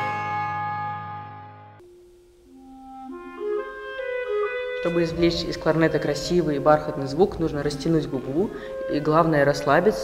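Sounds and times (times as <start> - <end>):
solo clarinet melody: 0.0 - 7.2.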